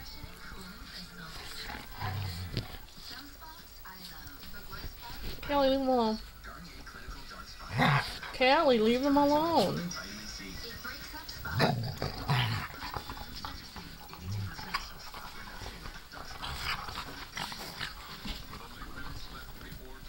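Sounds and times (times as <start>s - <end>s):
dog growling: 1.0s - 3.1s, 7.6s - 8.4s, 11.3s - 20.0s.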